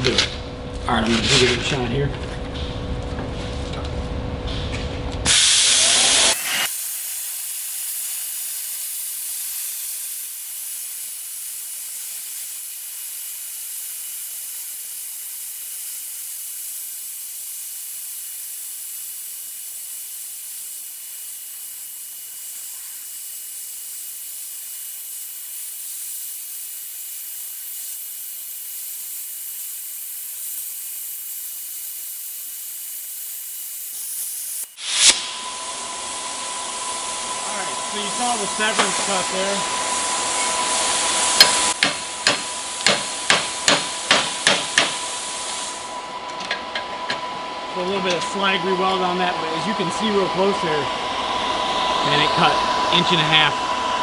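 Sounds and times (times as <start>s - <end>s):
plasma cutter hissing: 5.2s - 46.0s, 47.8s - 54.0s.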